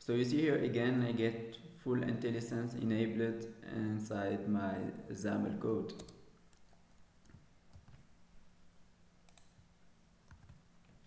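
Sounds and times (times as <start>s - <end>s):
keyboard keys clicking: 10.3s - 11.0s.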